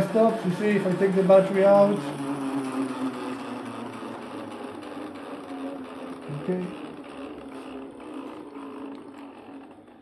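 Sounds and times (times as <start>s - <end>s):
generator rotor whirring hum: 0.0s - 10.0s.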